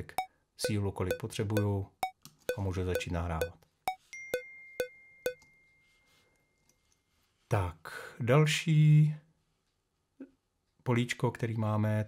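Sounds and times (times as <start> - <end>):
metronome clicks: 0.0 - 5.5.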